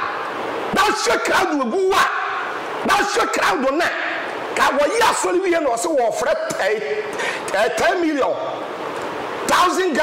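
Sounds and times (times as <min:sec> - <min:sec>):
man speaking animatedly: 0:00.7 - 0:08.5, 0:09.5 - 0:10.0.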